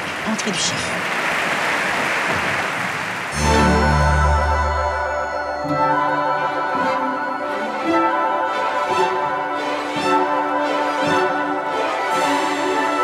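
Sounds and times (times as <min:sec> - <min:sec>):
orchestral music with bowed strings: 0:03.4 - 0:13.0.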